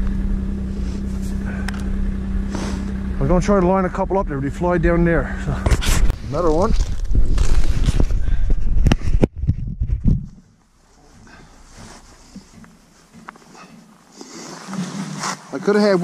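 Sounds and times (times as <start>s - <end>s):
rustle of snow: 0.6s - 1.6s, 2.4s - 3.0s, 10.9s - 13.6s
camera handling rumble and knocks: 5.6s - 10.6s.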